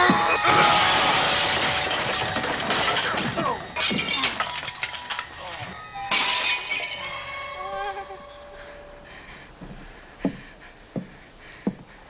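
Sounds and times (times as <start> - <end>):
glass shattering: 0.5 - 8.2
shards clinking: 1.1 - 8.5.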